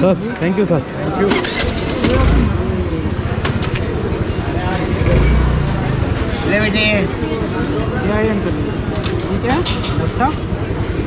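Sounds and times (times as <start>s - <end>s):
motor traffic rumble: 0.0s - 11.0s
voices chattering: 0.0s - 11.0s.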